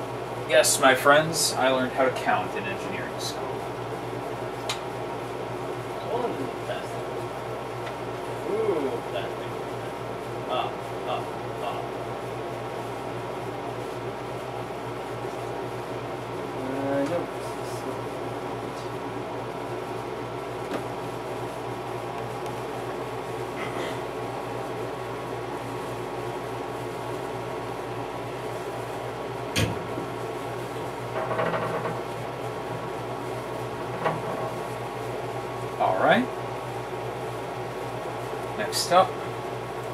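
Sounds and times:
machinery hum: 0.0s - 39.9s.

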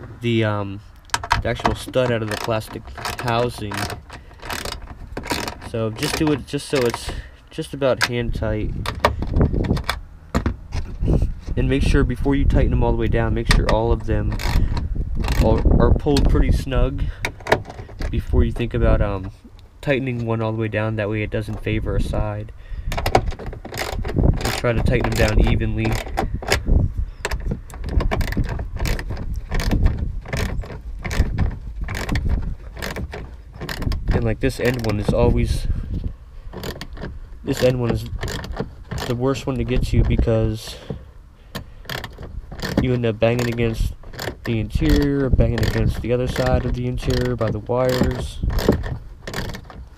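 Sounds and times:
ratchet clicks and knocks: 1.0s - 7.3s, 7.9s - 19.3s, 22.8s - 35.8s, 36.4s - 49.9s.

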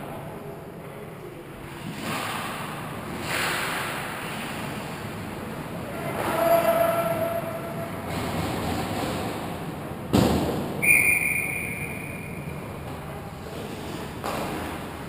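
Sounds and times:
ice skates and play echoing: 0.0s - 15.0s
referee's whistle: 10.8s - 12.6s.

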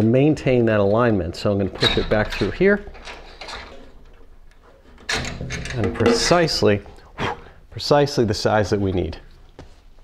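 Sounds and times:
faint metal scraping of reamer: 1.7s - 7.1s.

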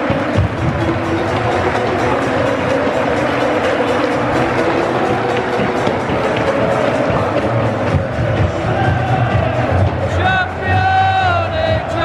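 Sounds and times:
large crowd noise: 0.0s - 12.0s
music over loudspeakers: 0.0s - 12.0s.

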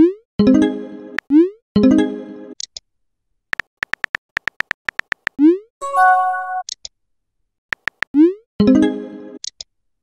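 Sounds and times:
phone keyboard typing clicks: 3.5s - 5.4s, 7.7s - 8.1s.

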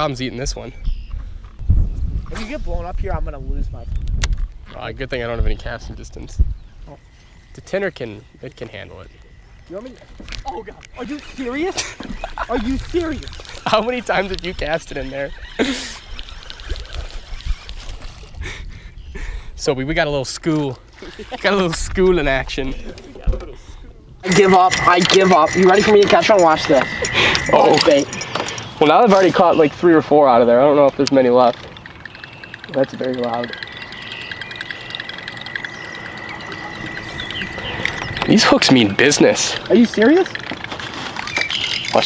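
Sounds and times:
birds chirping: 0.0s - 42.0s
thin high-pitched whine: 4.8s - 18.2s, 24.2s - 42.0s
fish splashing and thrashing in water: 15.4s - 18.4s.

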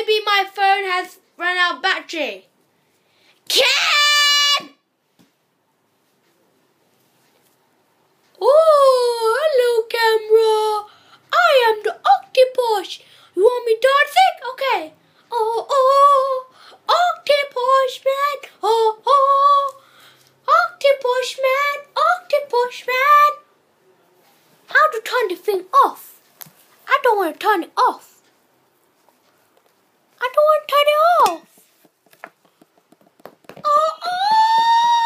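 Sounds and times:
high voice singing unaccompanied: 8.4s - 23.5s, 33.6s - 35.0s.

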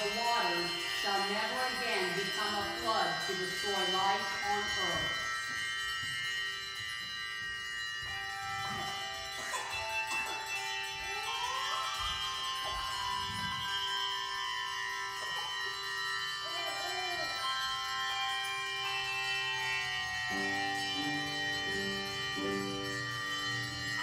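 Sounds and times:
handbell choir ringing chords: 0.0s - 24.0s.

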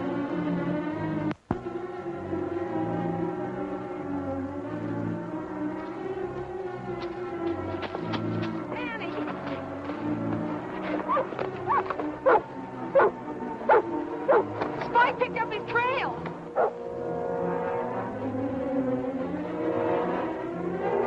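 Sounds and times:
orchestral music: 0.0s - 21.0s
dog barking and yelping: 11.0s - 14.5s, 16.6s - 16.8s.

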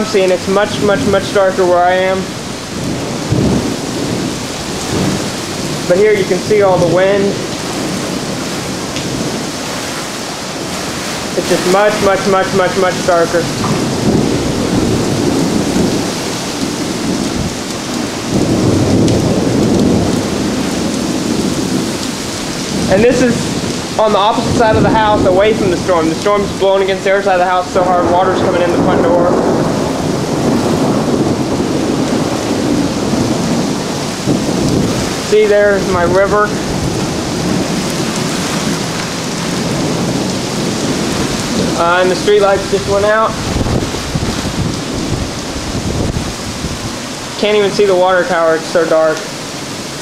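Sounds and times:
heavy rain: 0.0s - 50.0s
strong wind: 0.0s - 50.0s.

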